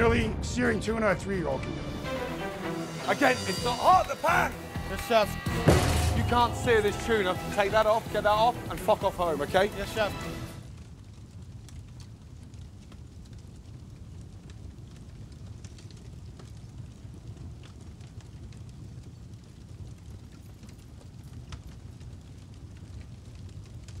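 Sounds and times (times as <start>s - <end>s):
fire crackles: 0.0s - 24.0s
low fire rumble: 0.0s - 24.0s.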